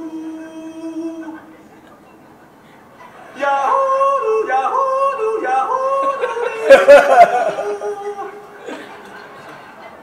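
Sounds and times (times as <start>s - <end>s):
person yodeling over speakers: 3.4s - 8.5s.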